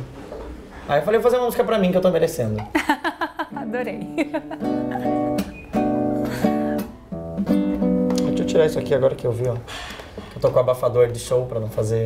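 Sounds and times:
acoustic guitar strummed chords: 0:03.5 - 0:09.2.

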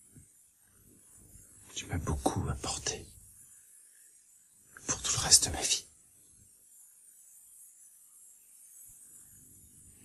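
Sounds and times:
man speaking quietly: 0:01.7 - 0:03.2, 0:04.8 - 0:05.9.

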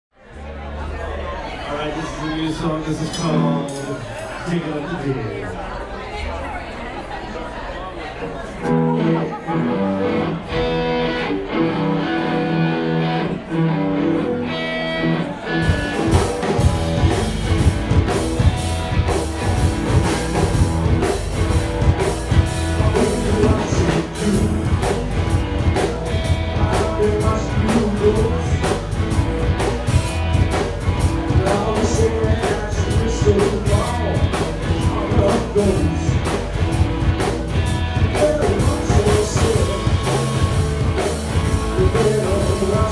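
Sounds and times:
electric guitar: 0:08.6 - 0:42.9
upright bass: 0:08.6 - 0:42.9
drum kit: 0:15.5 - 0:42.9.

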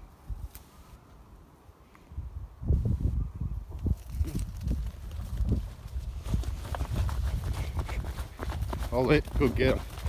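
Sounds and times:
rustle of carried camera: 0:03.7 - 0:10.0
running footsteps on grass: 0:04.4 - 0:10.0.

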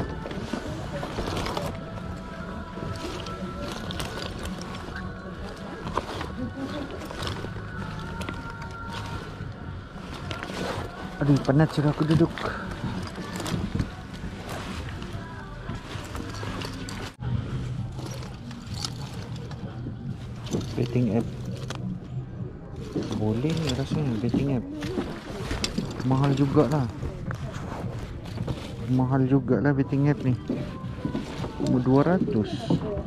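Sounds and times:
faint background music: 0:00.0 - 0:33.0.

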